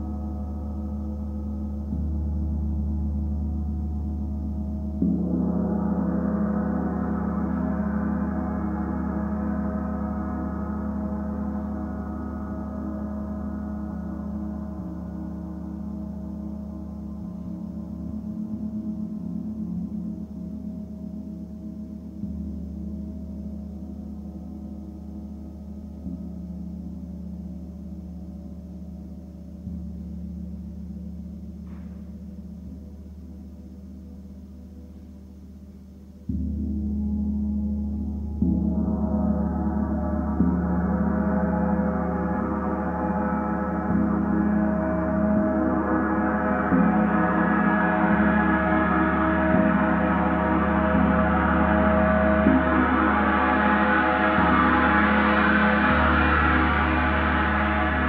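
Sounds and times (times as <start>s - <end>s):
large gong ringing: 36.3s - 58.0s.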